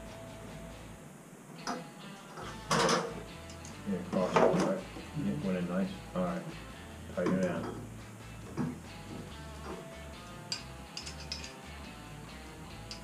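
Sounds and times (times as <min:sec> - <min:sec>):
man talking: 0:03.8 - 0:06.5, 0:07.1 - 0:07.7
metal clank: 0:10.5 - 0:11.6.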